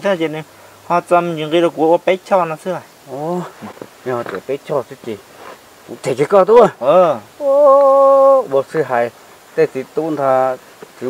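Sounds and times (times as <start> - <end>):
man speaking: 0.0 - 5.2, 5.9 - 11.0.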